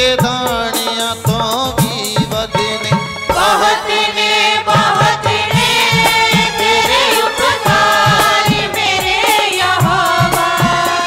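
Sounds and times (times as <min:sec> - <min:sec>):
man and woman singing: 0:00.0 - 0:11.0
steady drum beat: 0:00.0 - 0:11.0.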